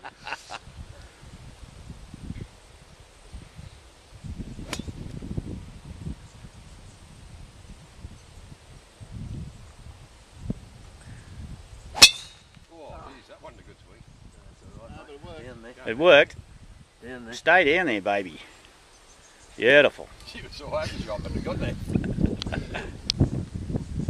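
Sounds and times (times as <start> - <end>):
golf club striking ball: 4.6 - 5.0, 11.9 - 12.6.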